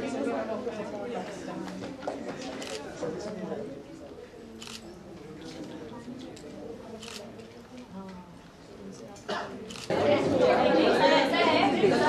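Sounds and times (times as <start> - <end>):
people chatting quietly: 0.0 - 12.0.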